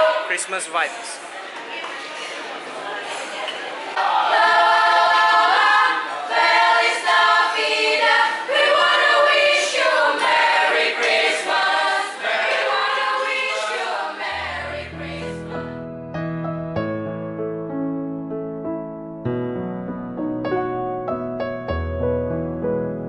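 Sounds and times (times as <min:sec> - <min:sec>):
choir singing a cappella: 0:00.0 - 0:00.4, 0:03.2 - 0:15.9
instrumental music with held notes: 0:14.4 - 0:23.0.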